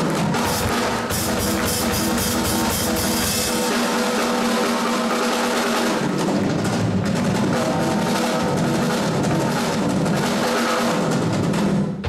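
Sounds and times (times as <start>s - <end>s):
live rock band playing: 0.0s - 6.1s
drum kit playing: 0.0s - 12.0s.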